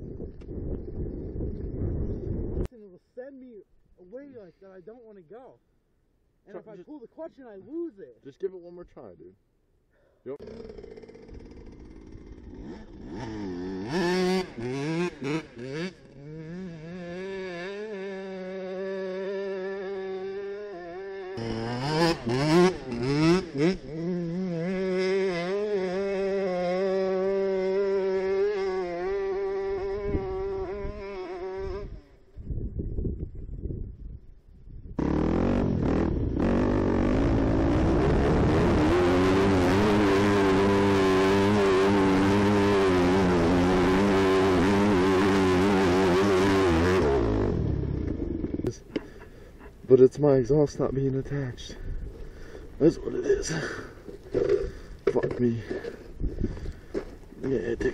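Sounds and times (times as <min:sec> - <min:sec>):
dirt bike engine revving: 0:10.4 - 0:32.3, 0:35.0 - 0:49.8, 0:50.4 - 0:57.9.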